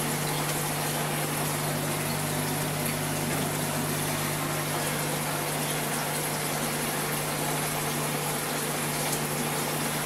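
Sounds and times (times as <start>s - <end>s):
aquarium pump humming: 0.0s - 10.0s
water rushing and bubbling: 0.0s - 10.0s.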